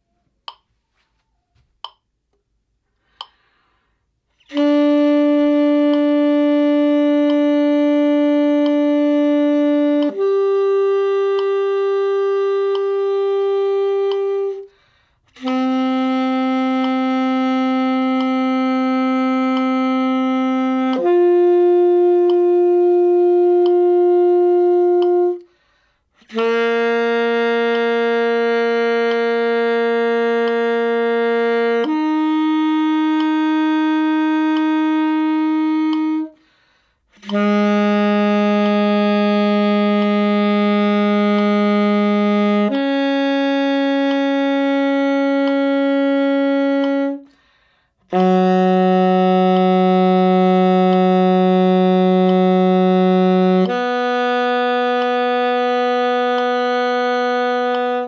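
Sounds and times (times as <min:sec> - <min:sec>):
alto saxophone long notes: 0:03.0 - 0:58.0.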